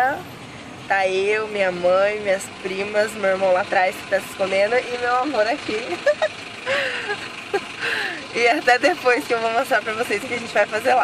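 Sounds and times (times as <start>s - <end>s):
car cabin noise: 0.9s - 11.0s
breathy laughter: 5.9s - 8.2s.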